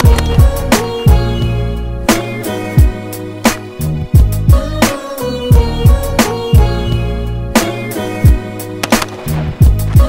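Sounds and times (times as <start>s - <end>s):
hip-hop beat with deep bass: 0.0s - 10.0s.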